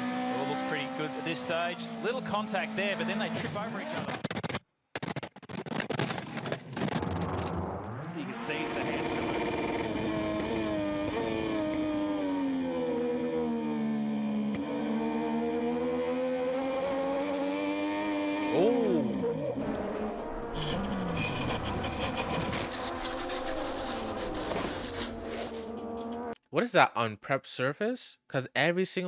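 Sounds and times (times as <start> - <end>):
racing motorcycle engines: 0.0 - 4.2, 7.2 - 26.4
motorcycles passing by: 8.4 - 26.4.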